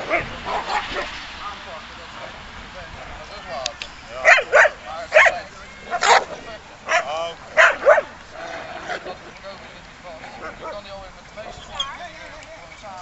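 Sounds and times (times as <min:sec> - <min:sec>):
dog barking sharply: 0:04.2 - 0:08.1.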